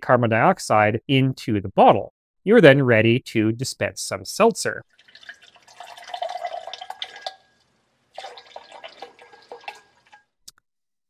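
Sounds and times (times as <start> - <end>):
water splashing into a glass: 4.9 - 7.6, 8.2 - 10.3
soda siphon squirting: 4.9 - 10.3.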